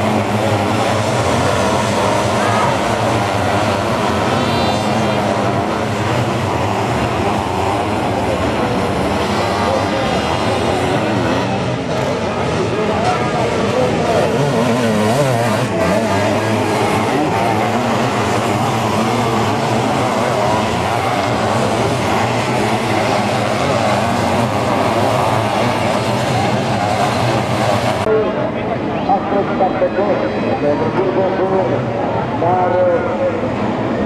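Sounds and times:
motorcycle engines revving: 0.0s - 34.0s.

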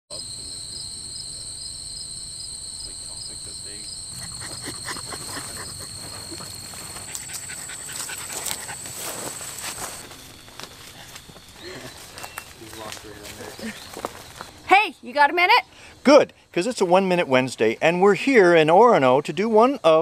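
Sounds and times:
insects trilling: 0.1s - 20.0s
dog panting: 4.1s - 9.7s
dog rustling through grass: 5.2s - 11.2s.

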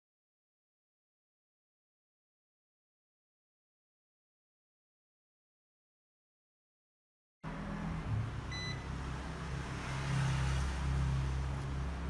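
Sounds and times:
short electronic beep: 8.5s - 8.8s.

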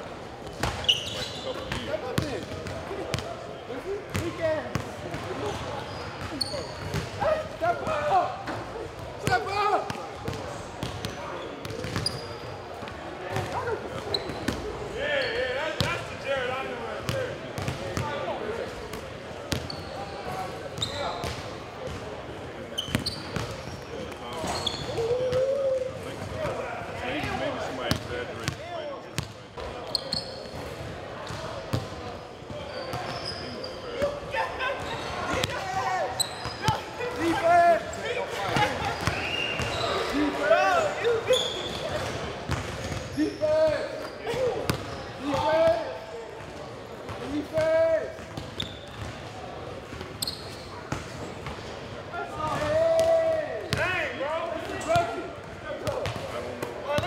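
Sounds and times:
players talking: 0.1s - 57.0s.

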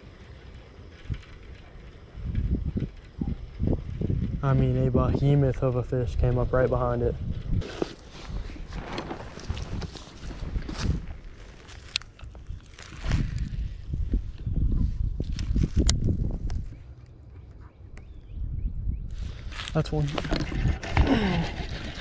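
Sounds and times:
wind buffeting microphone: 0.8s - 22.0s
footsteps in grass: 7.6s - 13.8s.

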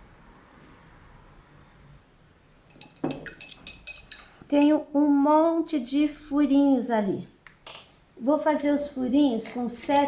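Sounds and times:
brushes and paint pots clinking: 2.7s - 4.8s.

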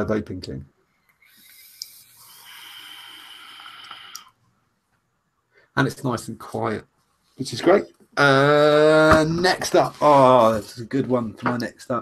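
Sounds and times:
air hissing through vape tank: 1.2s - 4.3s.

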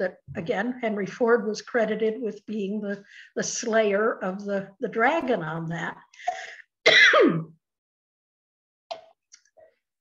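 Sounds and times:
woman clearing her throat: 6.9s - 7.6s.

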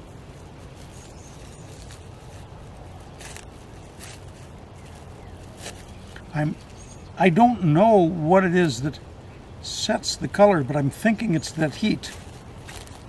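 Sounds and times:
low background hum: 0.0s - 13.0s
plastic wrap crinkling: 0.3s - 6.3s, 11.5s - 13.0s.

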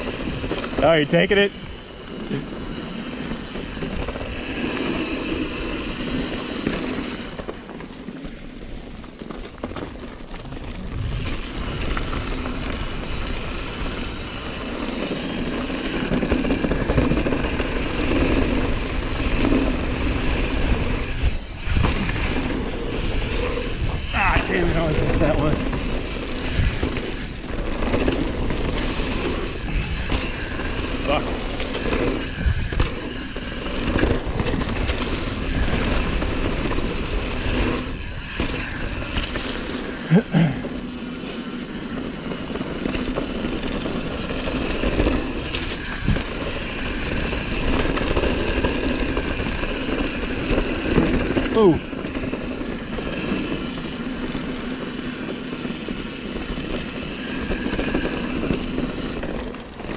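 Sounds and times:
bike tyres rushing over dirt: 0.0s - 59.9s
wind noise: 0.0s - 59.9s
bike knocks and rattles: 6.4s - 23.5s.

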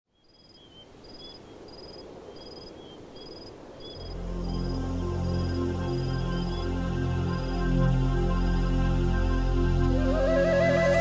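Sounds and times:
faint outdoor background noise: 0.1s - 11.0s
crickets chirping: 0.2s - 9.2s.

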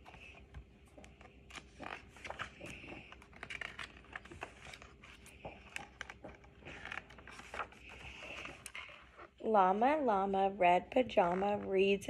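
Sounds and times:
book pages turning: 0.0s - 9.4s.

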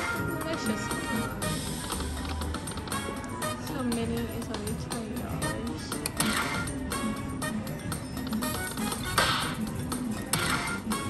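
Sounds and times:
slot machine bonus music: 0.0s - 4.4s, 5.0s - 11.0s.

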